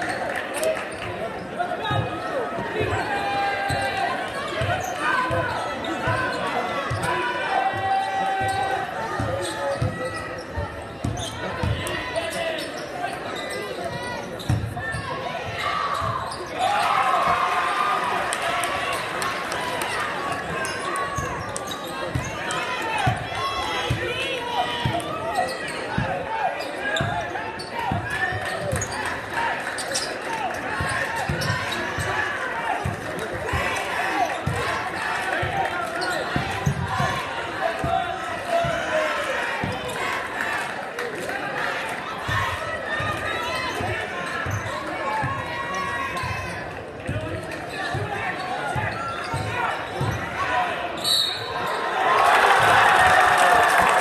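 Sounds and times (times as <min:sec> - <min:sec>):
crowd chatter and shouting: 0:00.0 - 0:54.0.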